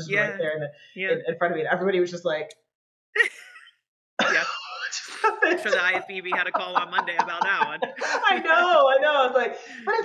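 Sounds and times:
woman laughing: 3.2s - 8.8s
woman speaking while laughing: 5.4s - 8.8s.

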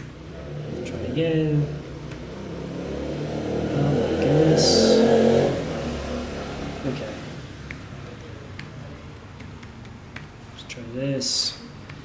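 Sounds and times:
man speaking: 0.0s - 1.9s, 3.7s - 5.4s, 6.8s - 7.4s, 10.5s - 11.8s
computer keyboard keystrokes: 7.6s - 10.6s.

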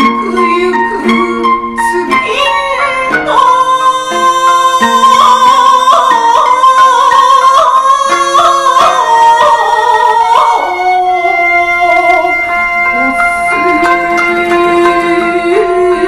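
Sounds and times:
sustained instrumental accompaniment: 0.0s - 16.0s
woman chanting: 0.0s - 16.0s.

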